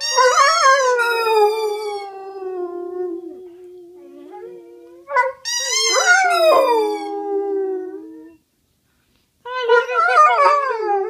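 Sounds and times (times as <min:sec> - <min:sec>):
dog howling: 0:00.1 - 0:08.4, 0:09.5 - 0:11.0.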